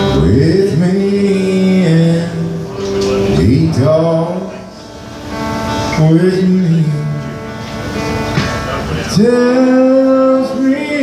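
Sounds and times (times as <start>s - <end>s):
strummed guitar: 0.0s - 11.0s.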